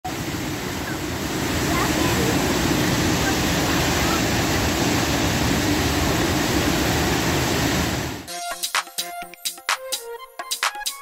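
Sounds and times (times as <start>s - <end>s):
floodwater rushing over a weir: 0.1s - 8.3s.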